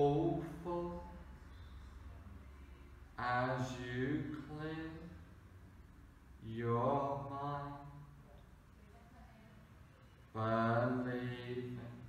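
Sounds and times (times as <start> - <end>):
man holding low steady tone: 0.0 - 1.8.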